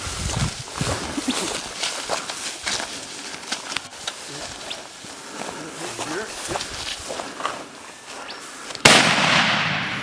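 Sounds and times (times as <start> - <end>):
rifle shot with echo: 8.8 - 10.0.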